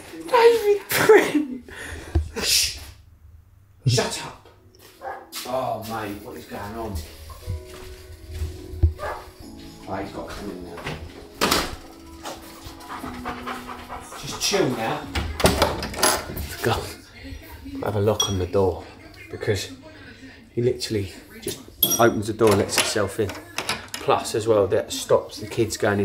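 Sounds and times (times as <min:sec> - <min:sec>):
background music: 0:03.8 - 0:26.0
dog panting: 0:09.0 - 0:09.4, 0:11.8 - 0:15.5.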